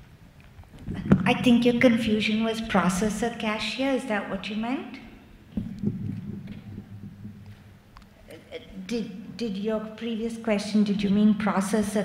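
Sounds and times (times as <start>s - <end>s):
low hum: 5.0s - 10.1s.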